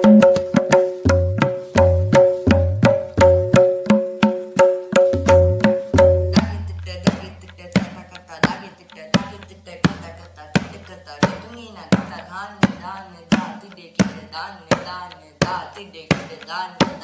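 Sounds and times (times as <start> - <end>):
sharp tabla strokes: 0.0 - 17.0
person reciting rhythmic syllables: 5.2 - 17.0.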